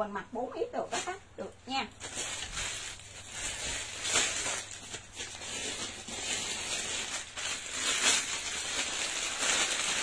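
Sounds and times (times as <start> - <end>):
fabric and plastic rustling: 0.7 - 10.0.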